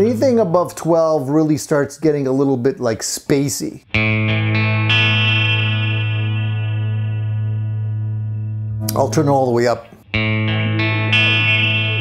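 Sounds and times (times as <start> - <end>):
electric guitar chord with delay: 3.9 - 9.3, 10.1 - 12.0.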